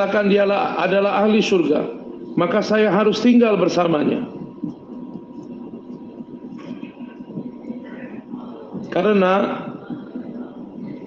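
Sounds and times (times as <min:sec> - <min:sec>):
thin steady tone: 0:00.0 - 0:11.0.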